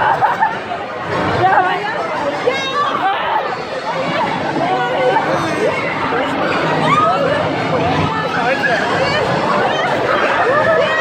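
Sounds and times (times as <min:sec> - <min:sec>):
faint crowd babble: 0:00.0 - 0:11.0
people chattering and laughing: 0:00.0 - 0:11.0.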